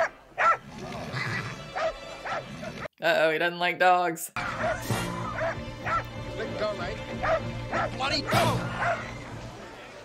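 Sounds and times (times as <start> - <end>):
dog barking and yelping: 0.0 - 0.6, 1.7 - 2.9, 4.4 - 6.1, 7.2 - 9.2
film music: 0.0 - 2.9, 4.4 - 10.0
crowd noise: 7.7 - 10.0.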